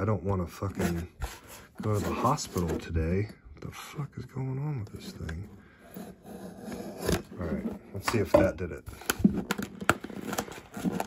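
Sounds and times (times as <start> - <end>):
cardboard rustling: 0.4 - 3.4, 4.9 - 11.0.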